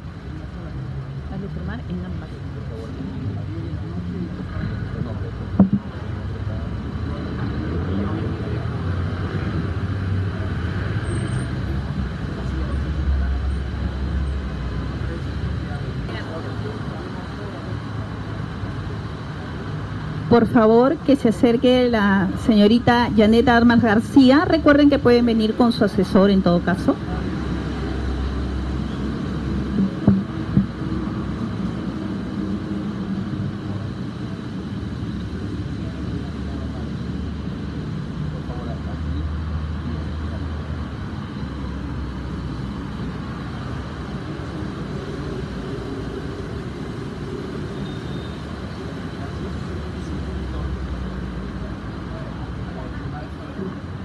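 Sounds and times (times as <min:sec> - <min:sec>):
faint murmured voices: 0:00.0 - 0:24.4, 0:25.4 - 0:54.0
brief knocks: 0:05.6 - 0:05.9, 0:29.8 - 0:30.7
steady low rumble: 0:22.0 - 0:39.0.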